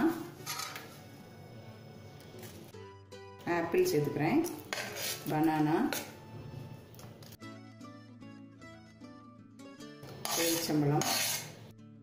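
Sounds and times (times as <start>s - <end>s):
spoon scraping ceramic plate: 4.6s - 6.1s, 10.0s - 11.7s.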